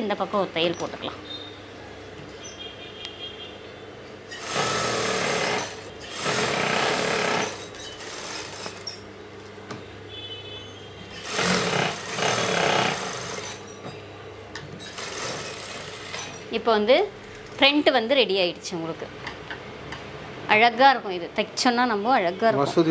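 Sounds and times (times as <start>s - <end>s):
motor hum: 4.3s - 9.0s
sewing machine stitching: 4.4s - 8.8s, 11.2s - 13.6s, 14.9s - 16.2s.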